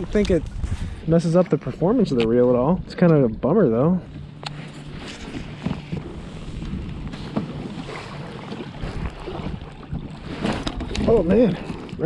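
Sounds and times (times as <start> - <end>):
waves lapping against hull: 0.0 - 12.0
wind buffeting microphone: 0.0 - 12.0.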